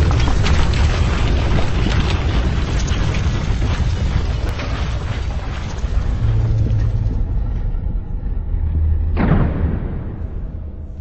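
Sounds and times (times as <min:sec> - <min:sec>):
deep cinematic rumble: 0:00.0 - 0:11.0.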